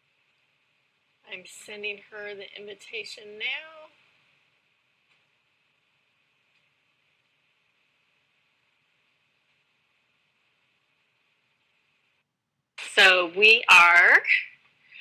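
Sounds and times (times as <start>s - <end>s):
faint microphone hiss: 0.0s - 15.0s.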